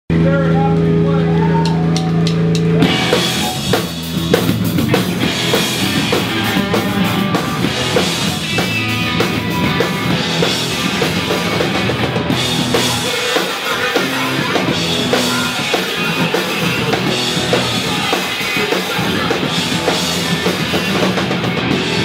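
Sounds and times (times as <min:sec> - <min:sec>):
punk band playing loud: 0:00.1 - 0:22.0.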